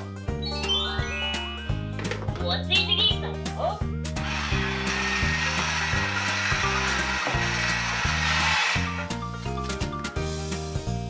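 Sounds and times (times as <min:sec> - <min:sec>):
children's music: 0:00.0 - 0:11.0
toy motor whirring: 0:04.2 - 0:09.2.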